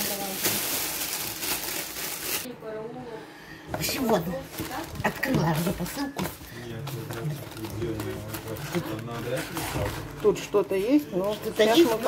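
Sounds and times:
people talking: 0.0s - 0.6s, 2.5s - 12.0s
paper wrapping crinkling: 0.0s - 2.5s, 4.4s - 12.0s.

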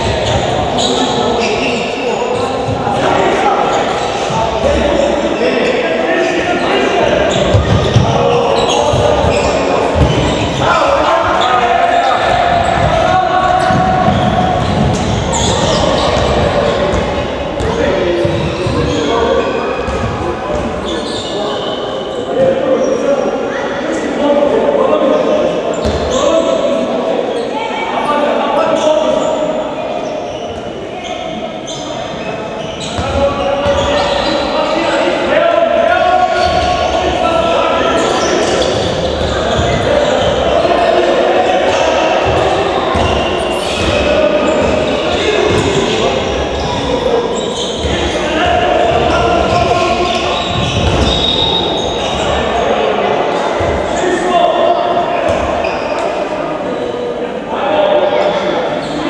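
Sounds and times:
players calling out: 0.0s - 59.0s
ball bouncing on wooden court: 12.7s - 17.0s.

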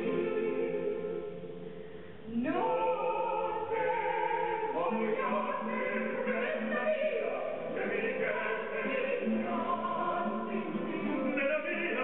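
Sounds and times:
operatic soprano and baritone duet: 0.0s - 12.0s.

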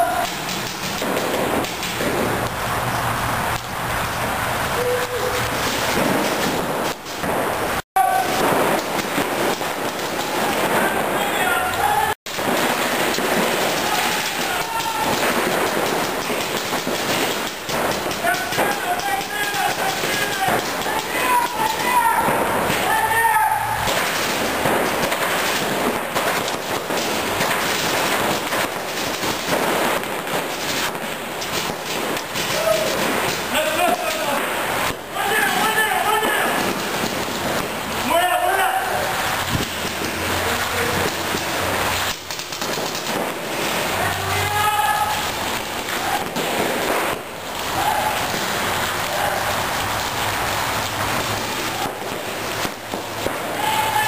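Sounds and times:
players shouting: 0.0s - 0.4s, 8.0s - 8.7s, 10.2s - 12.2s, 13.6s - 16.1s, 17.8s - 24.8s, 32.4s - 34.5s, 35.1s - 36.8s, 38.0s - 39.5s, 43.8s - 46.6s, 47.6s - 49.8s, 53.4s - 54.0s
paintball guns popping: 0.0s - 2.6s, 4.8s - 23.2s, 23.8s - 38.2s, 38.9s - 54.0s.

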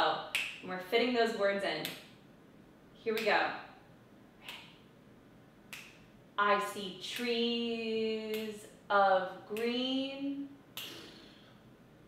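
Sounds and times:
finger snaps: 0.3s - 0.6s, 4.4s - 4.8s, 5.7s - 6.1s, 10.8s - 11.3s.

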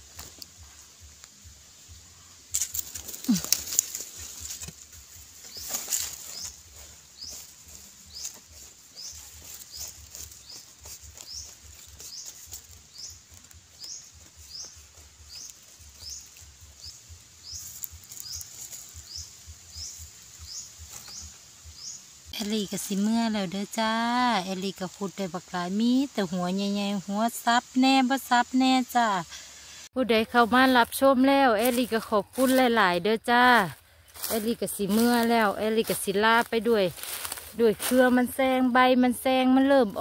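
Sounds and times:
hands scraping dry soil: 2.4s - 21.6s, 30.3s - 38.8s.

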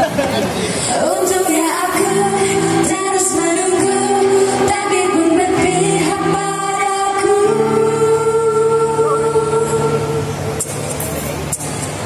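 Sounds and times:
acoustic guitar: 0.0s - 12.0s
women singing pop song: 0.8s - 10.3s.

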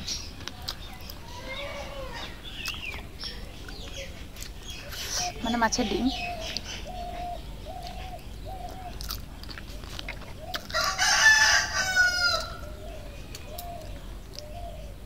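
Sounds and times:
rooster crowing: 10.7s - 12.8s.

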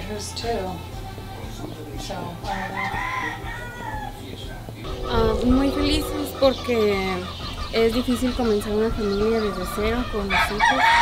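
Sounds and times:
steady low hum: 4.8s - 7.6s.

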